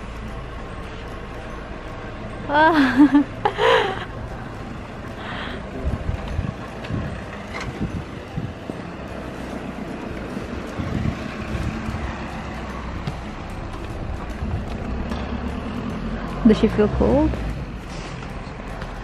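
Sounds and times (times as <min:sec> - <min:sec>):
pram wheels rolling on asphalt: 0:04.0 - 0:19.0.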